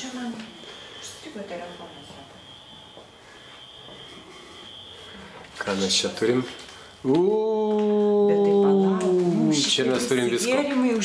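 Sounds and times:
high-pitched whine: 0.0 - 7.5.

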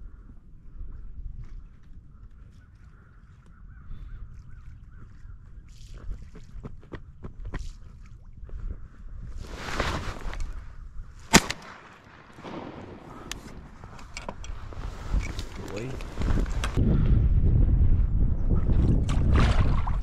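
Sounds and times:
rustling through dry grass: 9.4 - 16.8
shotgun shot: 11.3 - 13.7
wind on microphone: 12.4 - 20.0.

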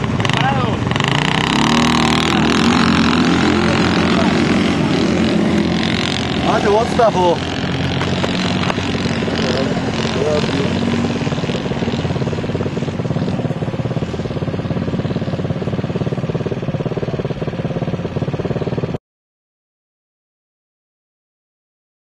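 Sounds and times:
quad bike engines racing: 0.0 - 19.0.

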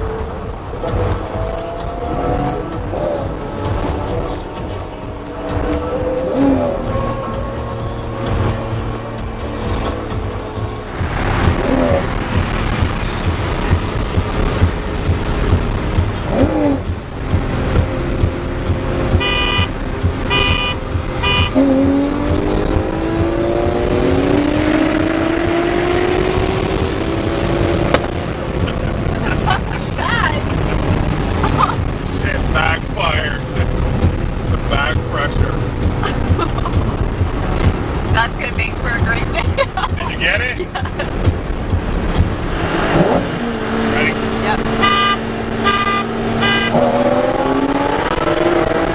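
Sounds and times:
cars passing at highway speed: 0.0 - 48.9
engine accelerating: 0.0 - 48.9
low road rumble: 0.0 - 48.9
car horn beeps: 19.2 - 21.7, 44.6 - 47.1.

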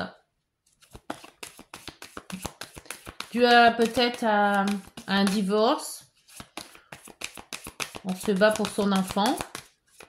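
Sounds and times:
cards being shuffled by hand: 0.7 - 10.0.

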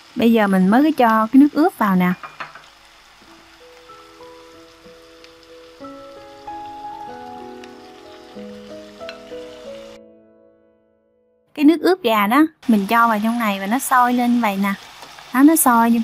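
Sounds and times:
marinade sizzling in a pan: 0.0 - 10.0, 12.0 - 16.0
soft background music: 3.2 - 12.6.

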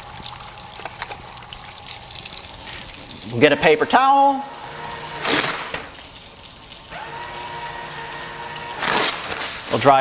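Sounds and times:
water running from a tap: 0.0 - 10.0
towel dispenser motor hum: 3.8 - 5.9, 6.9 - 9.8
paper towel rustling: 8.8 - 10.0.

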